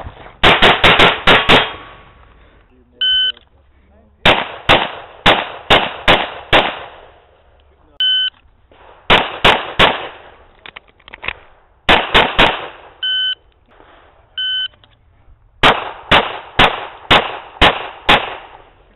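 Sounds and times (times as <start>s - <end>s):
pistol shots: 0.0s - 2.0s, 4.2s - 7.2s, 8.7s - 10.4s, 11.3s - 13.0s, 15.6s - 18.8s
shot timer beep: 13.0s - 13.4s, 14.4s - 14.8s.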